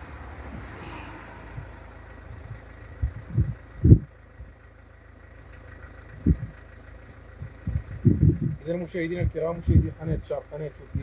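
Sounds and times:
car passing: 0.0s - 4.0s
road traffic rumbling: 0.0s - 11.0s.

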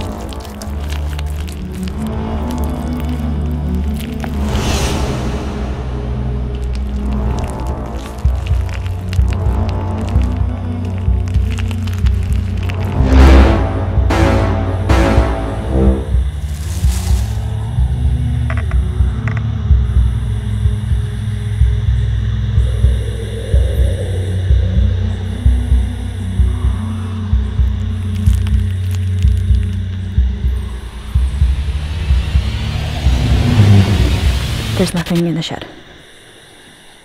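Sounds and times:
horror film score drone: 0.0s - 37.0s
rising hiss: 22.4s - 26.2s, 30.6s - 34.8s.

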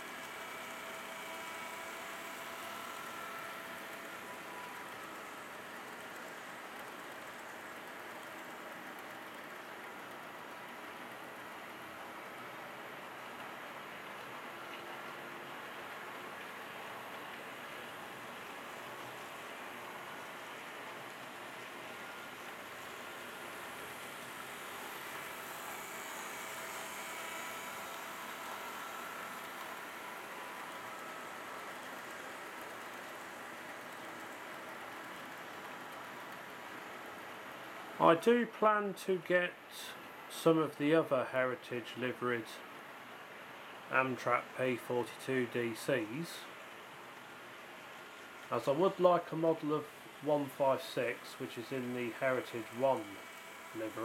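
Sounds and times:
model train wheels rolling: 0.0s - 38.6s, 43.8s - 54.0s
faint motor whine: 0.0s - 54.0s.

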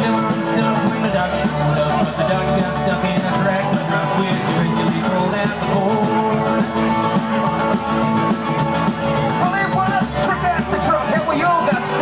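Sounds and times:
bending lead melody: 0.0s - 12.0s
rock and roll band playing: 0.0s - 12.0s.

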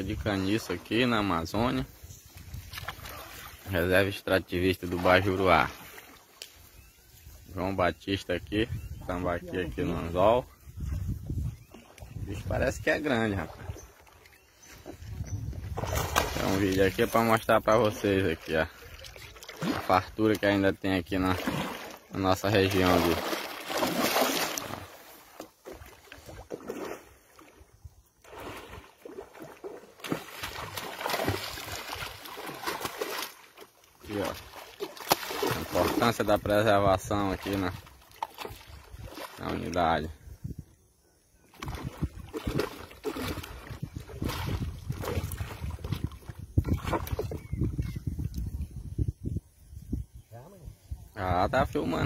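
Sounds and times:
water splashing and sloshing: 0.0s - 7.5s, 9.1s - 40.2s, 41.4s - 48.6s.

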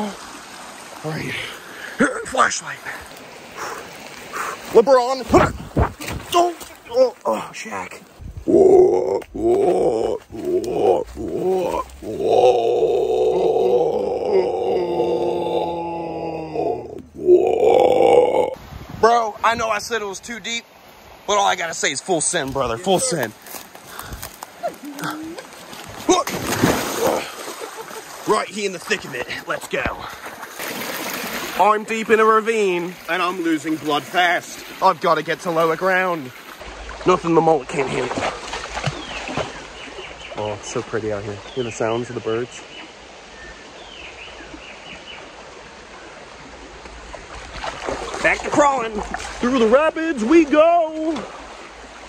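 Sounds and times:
stream rushing: 0.0s - 52.0s
birds calling: 0.4s - 5.3s, 37.7s - 52.0s
person grunting: 8.5s - 18.6s
water splashing from wading: 22.3s - 40.9s, 42.7s - 52.0s.

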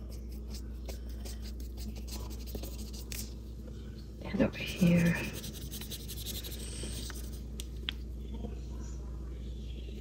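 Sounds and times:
paintbrush brushing on paper: 0.0s - 3.3s, 4.6s - 7.4s
low room hum: 0.0s - 10.0s.

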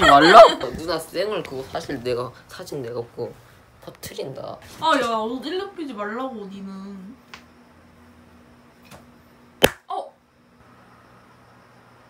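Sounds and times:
hand slap: 9.6s - 9.9s.

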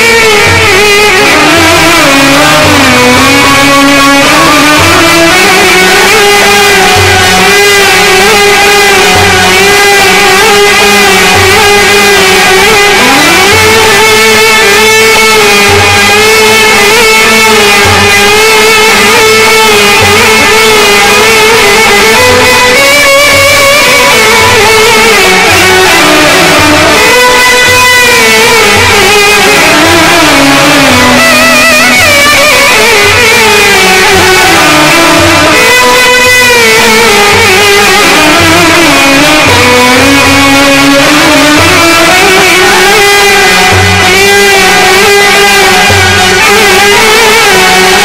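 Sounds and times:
held wavering melodic note: 0.0s - 48.0s
keyboard: 0.0s - 48.0s
nay flute: 0.0s - 48.0s
violin: 0.0s - 48.0s.

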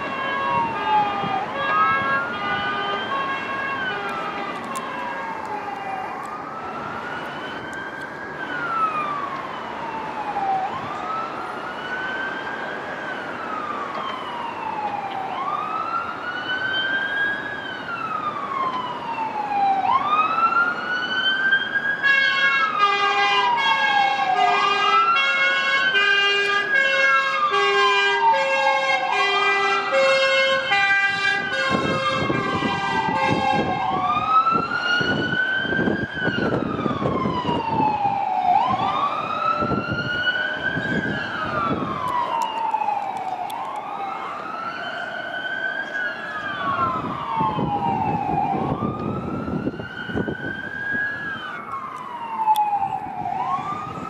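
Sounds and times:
fire engine siren wailing: 0.0s - 54.0s.

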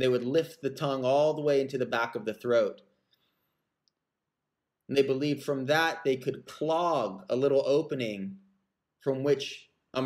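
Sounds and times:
man's voice: 0.0s - 2.8s, 4.9s - 8.4s, 9.0s - 10.0s.

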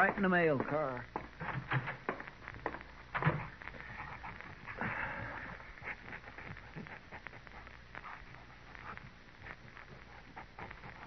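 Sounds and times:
footsteps on wooden floor: 0.0s - 11.0s
scuffing noise: 0.0s - 11.0s.

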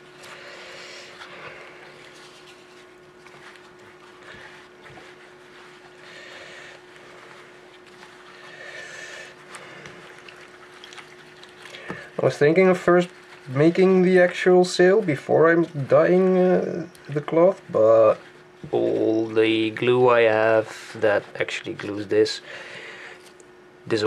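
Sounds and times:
wet fabric squelching and sloshing: 0.0s - 22.0s
faint steady hum: 0.0s - 24.0s.

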